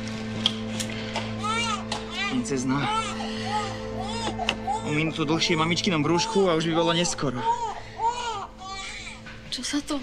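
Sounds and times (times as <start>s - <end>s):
low musical drone: 0.0s - 10.0s
newborn baby crying: 1.3s - 9.3s.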